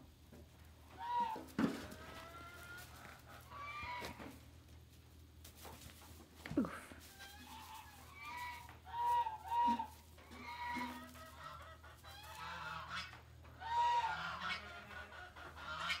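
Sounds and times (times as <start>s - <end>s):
high-pitched farm animal calls: 0.8s - 4.6s, 6.7s - 16.0s.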